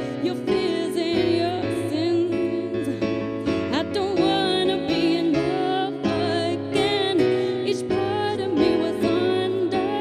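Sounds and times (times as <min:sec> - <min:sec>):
woman singing slow song: 0:00.0 - 0:10.0.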